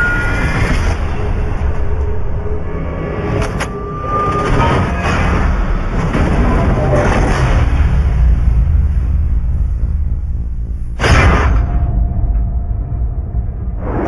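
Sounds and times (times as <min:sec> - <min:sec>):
heavy low rumble: 0:00.2 - 0:14.0.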